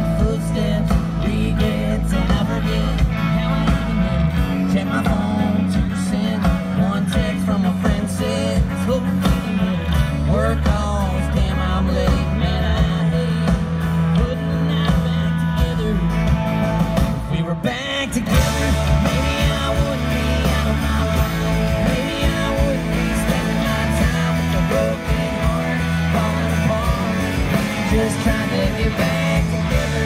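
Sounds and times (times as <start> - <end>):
bass: 0.0 - 30.0
drums: 0.0 - 30.0
electric and acoustic guitars: 0.0 - 30.0
person singing: 0.0 - 30.0.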